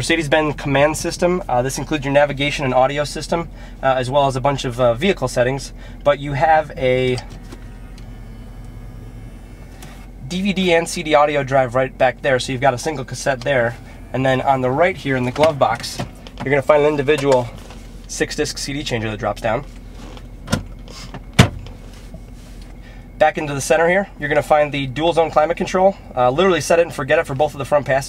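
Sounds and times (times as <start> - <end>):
low hum inside car cabin: 0.0 - 28.0.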